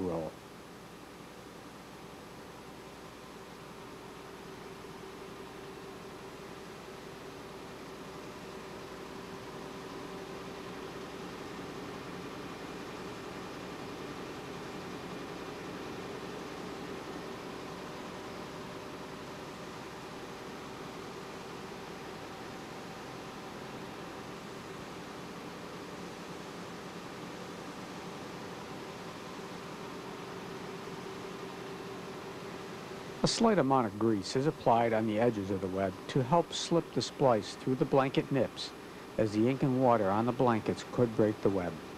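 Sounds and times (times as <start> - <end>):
faint constant hum: 0.0 - 41.9
printing press machinery drone: 0.0 - 41.9.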